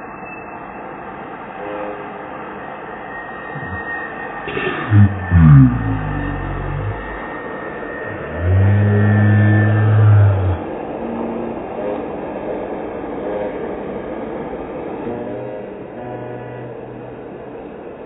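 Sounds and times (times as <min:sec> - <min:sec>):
traffic noise: 0:00.0 - 0:18.0
loud low steady tone: 0:03.6 - 0:03.9, 0:04.5 - 0:11.7, 0:15.0 - 0:17.6.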